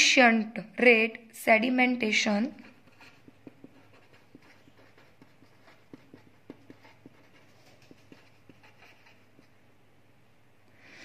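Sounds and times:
pen writing on paper: 2.4s - 9.6s.

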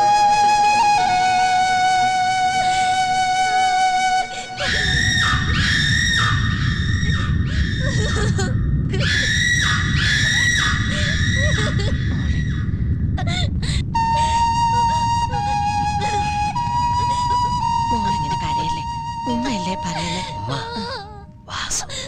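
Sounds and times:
flute music: 0.0s - 6.5s, 13.9s - 21.2s
loud wailing cries: 4.3s - 12.7s.

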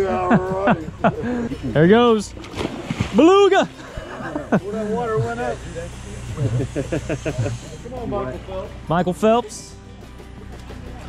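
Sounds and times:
person laughing: 0.0s - 1.8s, 3.6s - 5.4s, 6.3s - 7.8s
steady low hum: 0.0s - 11.0s.

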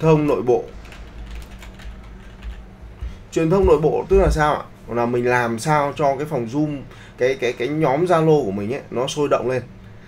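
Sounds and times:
keyboard typing clicks: 0.8s - 2.6s.

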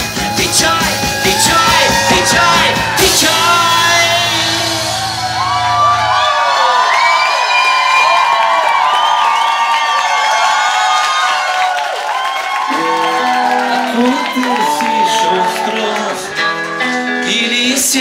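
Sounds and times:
rock band playing live: 0.0s - 6.3s, 12.7s - 18.0s
audience cheering and whooping: 0.0s - 17.0s.

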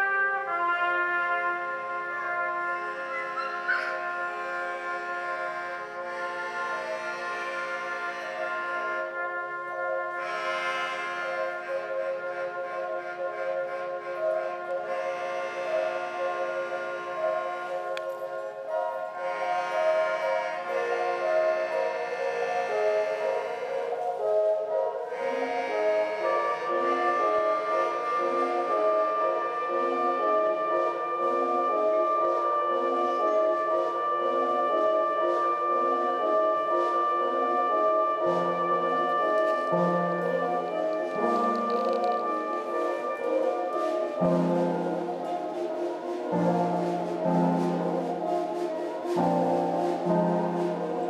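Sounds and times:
band playing droning tones: 25.2s - 49.2s.

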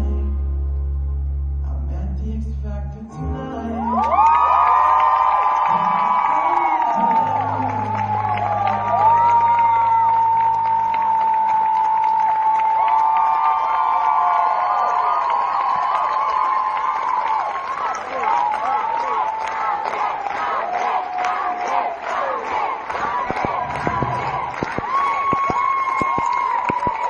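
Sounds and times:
audience cheering and screaming: 3.8s - 27.0s.

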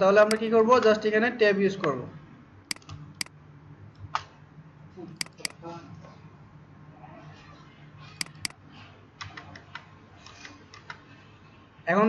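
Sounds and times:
computer mouse clicks: 5.2s - 5.6s, 8.2s - 8.6s
keyboard keystrokes: 5.2s - 5.6s, 8.2s - 8.5s.

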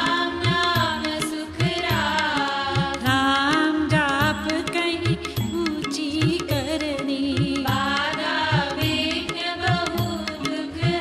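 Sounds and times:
woman singing a hymn: 0.0s - 11.0s.

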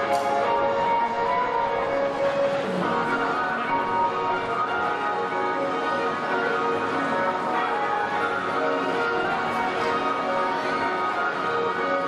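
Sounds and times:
bell-like chiming music: 0.0s - 12.0s.

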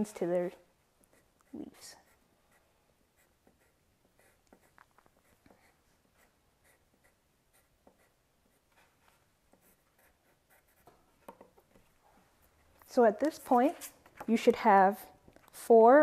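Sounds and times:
pencil scratching on paper: 0.2s - 13.0s.

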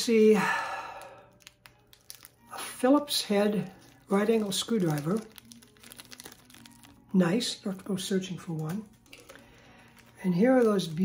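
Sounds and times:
plastic bag crinkling: 0.8s - 11.0s.

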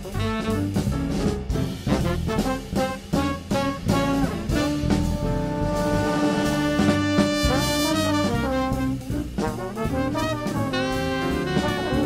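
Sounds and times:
small jazz band playing: 0.0s - 12.0s.

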